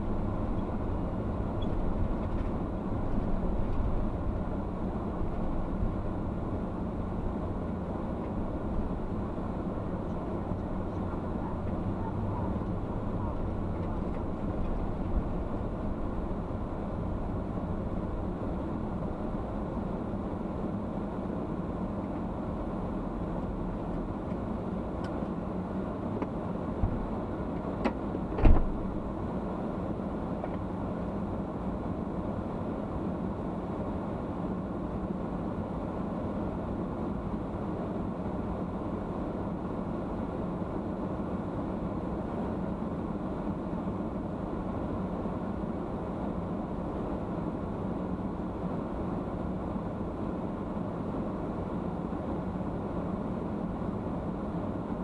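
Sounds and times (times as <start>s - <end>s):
car engine and road noise: 0.0s - 55.0s
loud thump: 28.4s - 28.8s.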